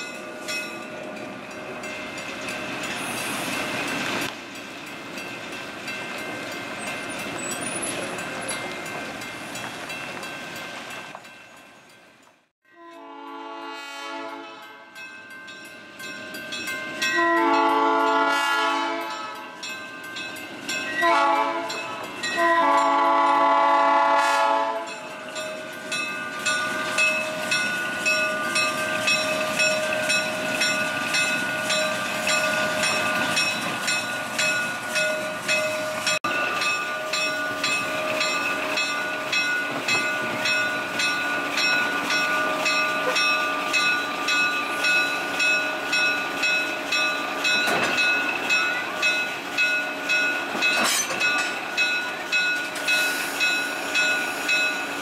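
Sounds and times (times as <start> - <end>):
locomotive bell ringing: 0.0 - 55.0
locomotive air horn: 12.7 - 15.0, 17.1 - 19.5, 21.0 - 25.0.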